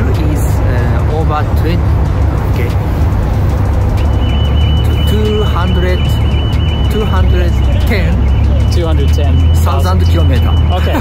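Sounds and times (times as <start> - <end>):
car engines idling: 0.0 - 11.0
music: 1.5 - 10.8.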